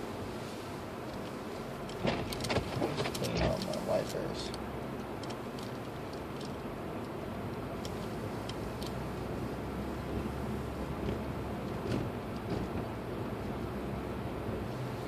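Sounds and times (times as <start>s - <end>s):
car engine and tyre rumble: 0.0s - 15.0s.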